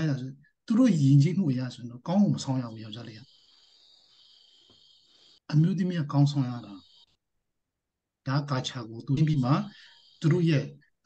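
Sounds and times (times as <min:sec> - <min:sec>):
faint high-pitched chirring: 0:00.0 - 0:07.3, 0:08.4 - 0:11.0
man's voice: 0:08.3 - 0:10.8.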